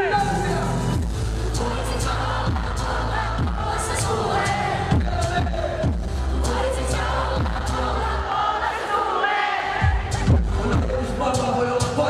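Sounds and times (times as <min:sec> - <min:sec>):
crowd cheering and singing: 0:00.0 - 0:12.0
hip-hop backing track: 0:00.0 - 0:12.0.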